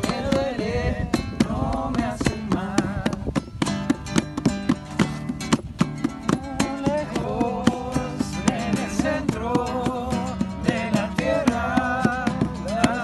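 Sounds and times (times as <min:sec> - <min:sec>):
man singing: 0:00.0 - 0:03.4, 0:06.3 - 0:13.0
acoustic guitar strumming: 0:00.0 - 0:13.0.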